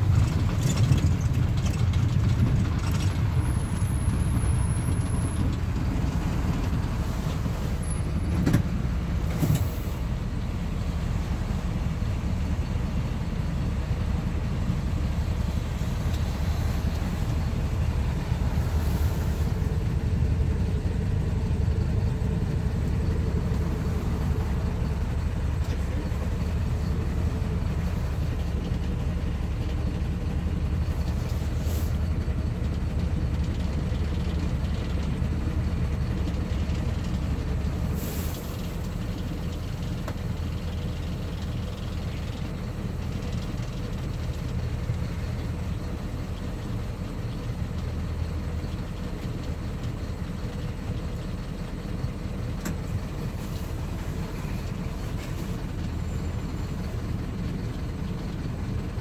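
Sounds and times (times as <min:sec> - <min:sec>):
diesel engine rumbling: 0:00.0 - 0:59.0.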